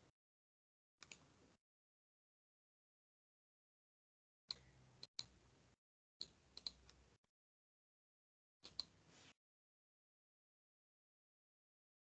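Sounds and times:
computer mouse clicks: 1.0 - 1.4, 4.5 - 5.4, 6.2 - 7.0, 8.6 - 9.0.

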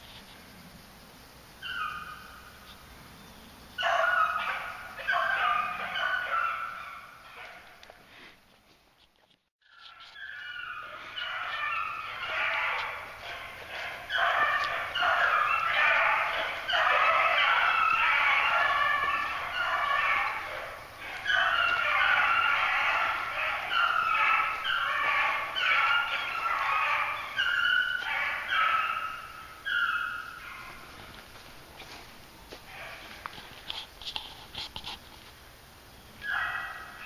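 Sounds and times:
dogs baying: 3.8 - 8.1, 9.7 - 35.0, 36.2 - 37.0.

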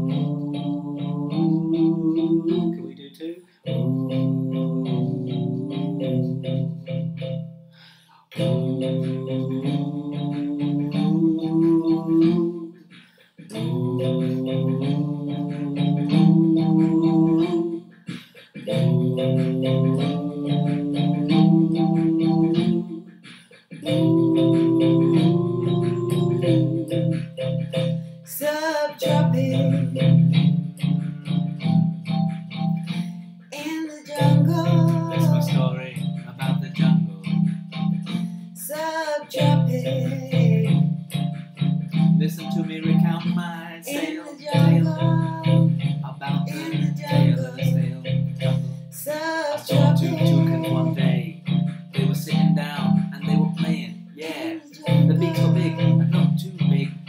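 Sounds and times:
man and woman singing ooh: 0.0 - 6.8, 8.3 - 30.6, 33.6 - 37.5, 38.1 - 40.9, 42.2 - 51.4, 52.0 - 56.9
low instrumental backing: 0.0 - 7.7, 8.3 - 57.0.

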